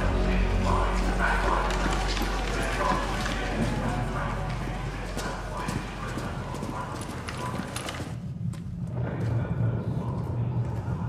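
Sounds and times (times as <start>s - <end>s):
steady low rumble: 0.0s - 7.4s, 8.1s - 11.0s.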